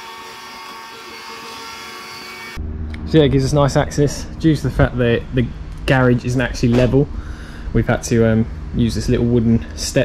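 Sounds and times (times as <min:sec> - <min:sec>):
low rumble: 0:02.6 - 0:09.8.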